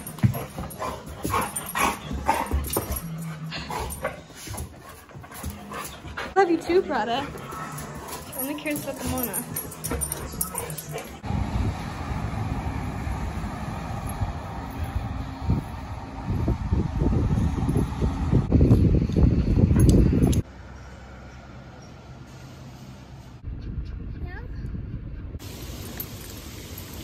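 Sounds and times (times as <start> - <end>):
dogs scuffling in play: 0.0 - 11.2
wind buffeting microphone: 11.2 - 20.4.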